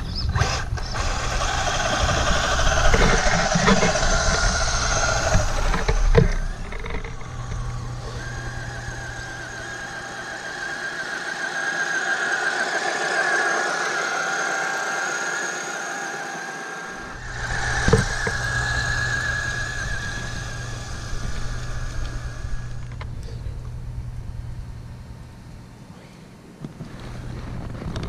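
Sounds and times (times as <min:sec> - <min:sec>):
electric motor whining: 0:00.0 - 0:25.6
low rumble: 0:17.0 - 0:25.4.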